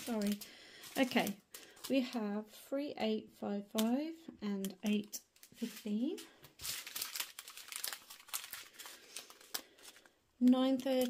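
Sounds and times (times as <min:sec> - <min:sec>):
thin plastic crinkling: 0:00.0 - 0:02.4, 0:03.8 - 0:11.0.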